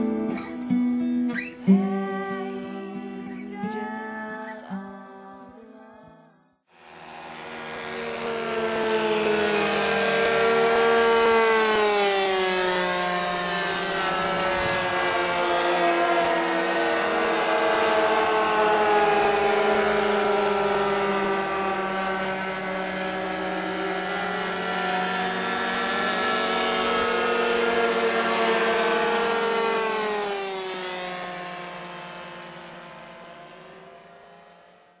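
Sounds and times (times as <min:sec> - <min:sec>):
model airplane engines racing: 0:06.8 - 0:35.0.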